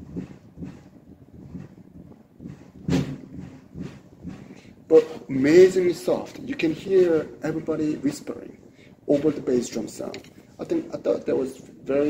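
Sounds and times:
soft bass drum thumps: 0.0 - 4.6.

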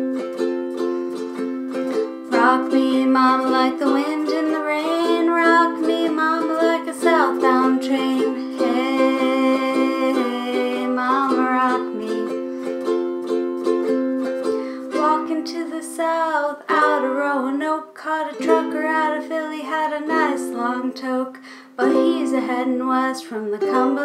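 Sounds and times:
ukulele strumming: 0.0 - 24.0.

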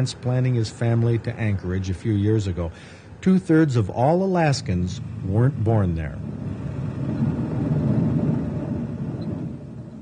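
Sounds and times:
plane engine rumbling: 0.0 - 10.0.

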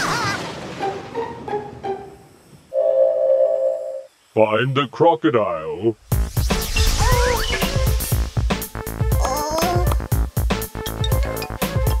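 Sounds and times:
impact tail: 6.0 - 8.8.

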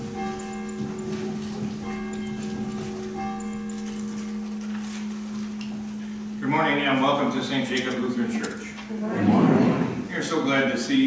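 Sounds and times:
church bells ringing: 0.0 - 8.8.

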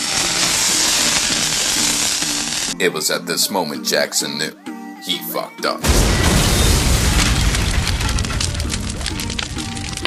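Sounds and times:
burning fuse hissing: 0.0 - 2.8.

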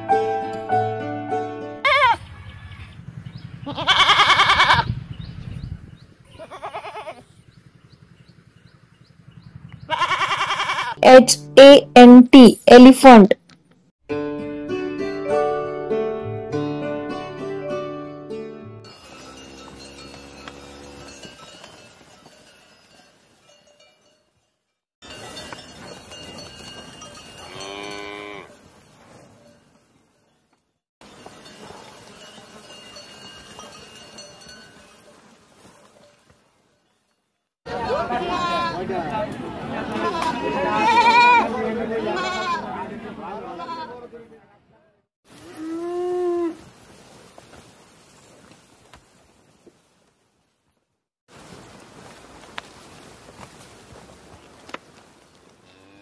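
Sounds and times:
plucked-string music: 0.0 - 1.8, 14.1 - 18.8
young goat bleating: 1.8 - 2.2, 3.6 - 4.9, 6.3 - 7.3, 9.9 - 11.0, 38.1 - 38.8, 40.0 - 42.7, 43.4 - 44.0
cow mooing: 27.4 - 28.6, 45.4 - 46.6, 55.6 - 56.0.

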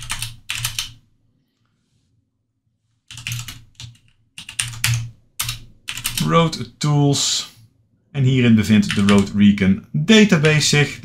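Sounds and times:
computer keyboard typing: 0.0 - 1.0, 3.1 - 6.4, 8.7 - 9.4.

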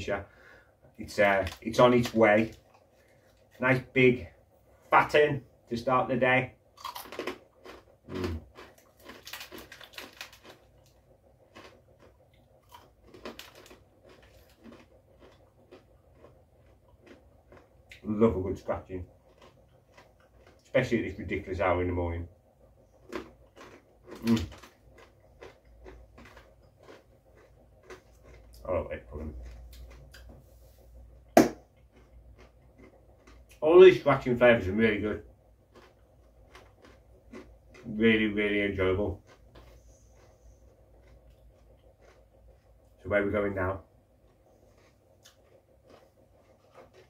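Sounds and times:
crunchy food being chewed: 1.1 - 4.1, 6.7 - 21.4, 22.6 - 34.6, 35.4 - 43.0, 43.8 - 47.0.

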